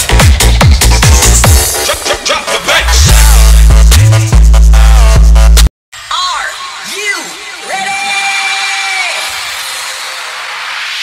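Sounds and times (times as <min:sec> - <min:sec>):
noise sweep: 0:09.0 - 0:11.0.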